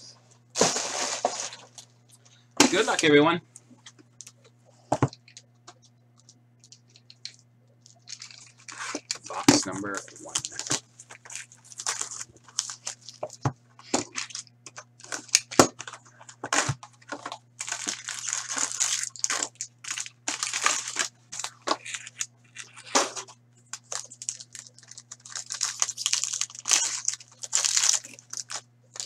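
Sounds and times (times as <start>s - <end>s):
faint steady hum: 0.0s - 29.0s
plastic wrap crinkling: 5.2s - 29.0s.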